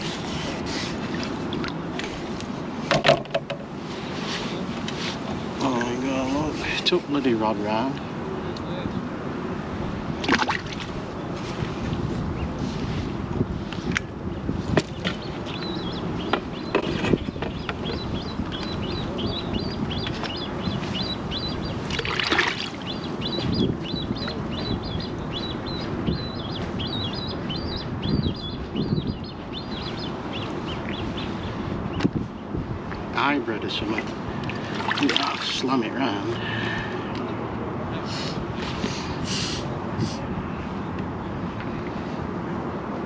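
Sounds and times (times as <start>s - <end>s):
wind: 0.0s - 43.0s
fishing tackle knocks and clicks: 2.9s - 3.7s
small birds chirping: 14.4s - 37.4s
water lapping: 14.8s - 25.8s, 33.8s - 36.8s.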